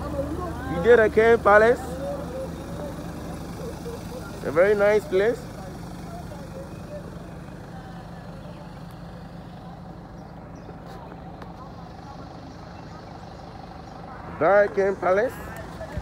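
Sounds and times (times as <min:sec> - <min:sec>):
minibus engine hum: 0:00.0 - 0:16.0.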